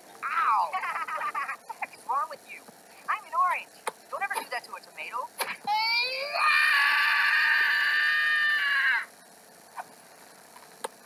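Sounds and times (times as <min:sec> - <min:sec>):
child screaming: 0:05.7 - 0:09.1.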